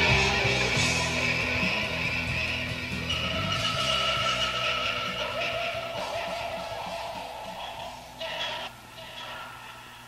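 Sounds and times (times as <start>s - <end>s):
long held high notes: 0.0s - 8.7s
psychedelic rock music: 0.0s - 8.7s.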